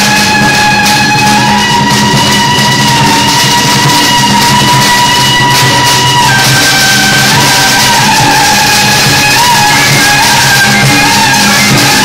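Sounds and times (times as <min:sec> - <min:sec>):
drums and cymbals: 0:00.0 - 0:12.0
firecrackers crackling: 0:00.0 - 0:12.0
shrill suona melody: 0:00.0 - 0:12.0.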